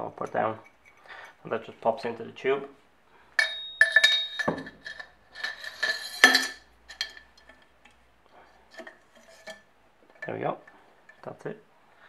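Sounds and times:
metal parts knocking on workbench: 3.4 - 7.6
thin metallic ring: 3.4 - 7.6.

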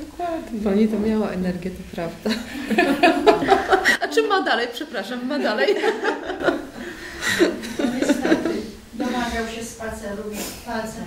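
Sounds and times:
woman speaking: 0.0 - 2.5, 3.9 - 6.1, 7.6 - 11.0
women laughing: 2.2 - 4.4, 5.4 - 9.3.

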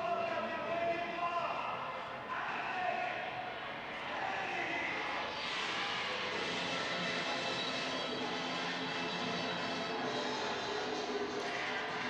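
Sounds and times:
concert music over loudspeakers: 0.0 - 12.0.

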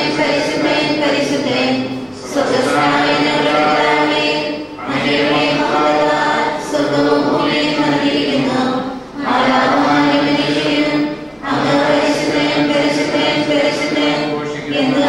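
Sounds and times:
voices singing a chant together: 0.0 - 15.0.

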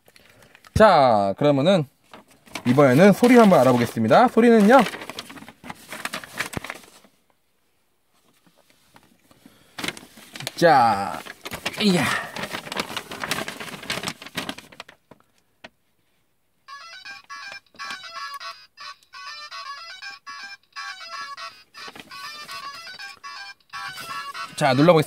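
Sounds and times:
rustling noise with clicks: 2.0 - 7.4, 8.1 - 11.8
tinny electronic ringtone melody: 16.7 - 25.0.

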